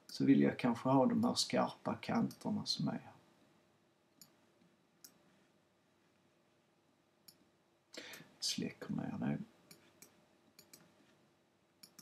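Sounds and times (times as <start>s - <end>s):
computer mouse clicks: 5.0s - 5.2s, 9.7s - 11.0s, 11.8s - 12.0s.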